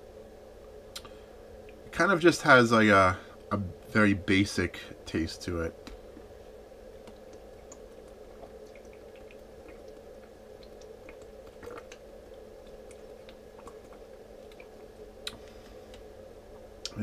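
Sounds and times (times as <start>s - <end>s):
low room hum: 0.0s - 17.0s
mouth clicks: 0.9s - 1.1s
man swallowing water: 7.1s - 15.4s.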